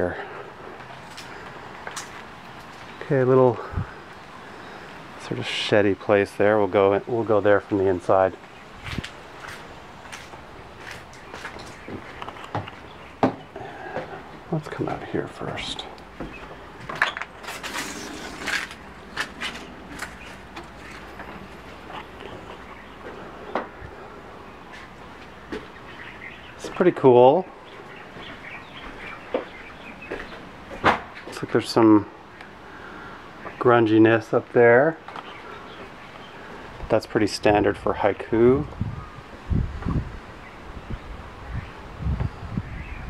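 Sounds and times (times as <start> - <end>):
outdoor background noise: 0.0 - 43.0.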